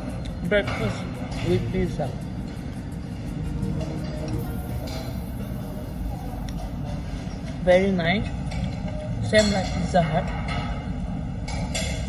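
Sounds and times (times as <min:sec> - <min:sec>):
soft background music: 0:00.0 - 0:12.0
low room rumble: 0:02.0 - 0:09.3.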